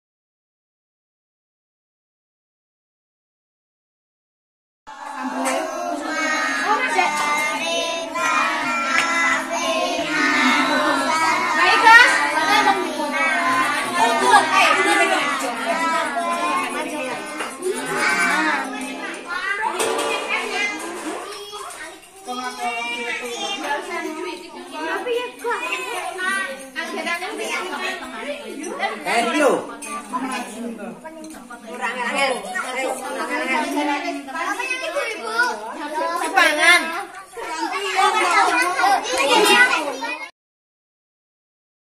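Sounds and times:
young children chattering: 4.9s - 40.3s.

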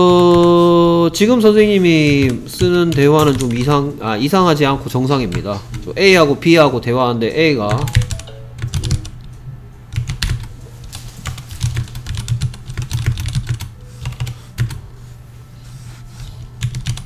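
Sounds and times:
computer keyboard typing: 1.6s - 3.8s, 7.7s - 9.3s, 9.9s - 14.8s, 16.6s - 17.0s.

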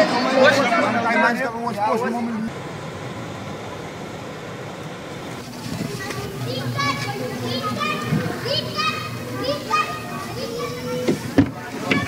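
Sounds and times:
children calling and chattering: 0.0s - 2.6s, 3.6s - 12.0s
street noise: 0.0s - 12.0s.

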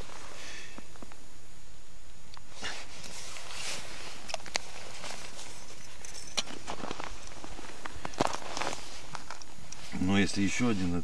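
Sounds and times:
snow and ice crunching: 2.5s - 11.0s.

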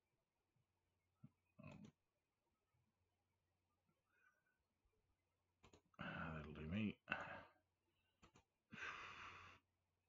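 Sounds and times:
breathy exhale: 8.8s - 9.6s.

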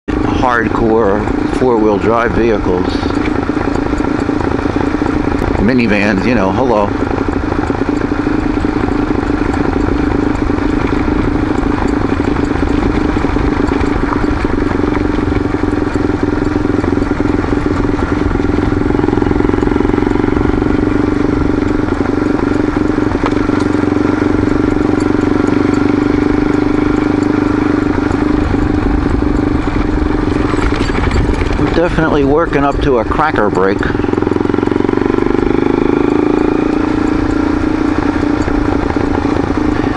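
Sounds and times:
vehicle engine running: 0.0s - 39.9s
tyre noise on gravel road: 0.1s - 39.9s.

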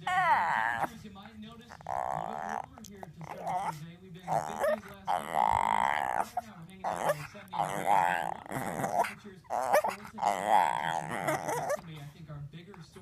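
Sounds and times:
puppy whine-howling: 0.0s - 1.0s, 1.7s - 11.9s.

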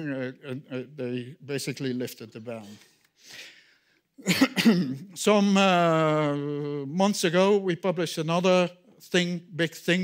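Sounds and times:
man coughing: 4.2s - 5.2s.

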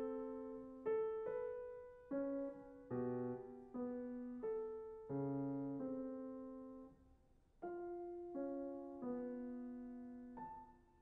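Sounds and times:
grand piano notes and chords: 0.0s - 7.0s, 7.6s - 11.0s.

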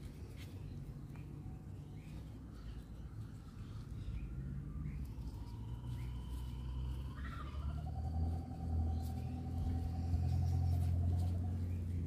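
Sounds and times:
engine rumble: 0.0s - 12.0s.

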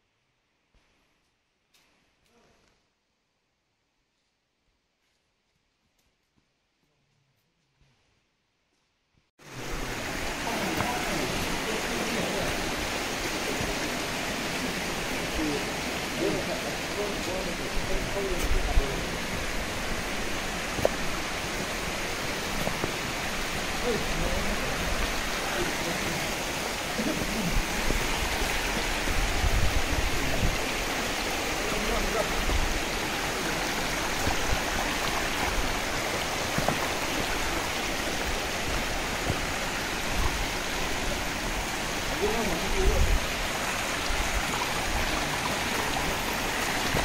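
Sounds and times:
water rushing over stones: 9.4s - 47.0s.

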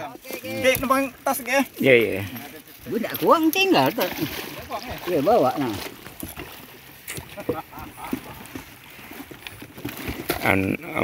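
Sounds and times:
shallow water: 0.0s - 11.0s
wind: 0.0s - 11.0s.

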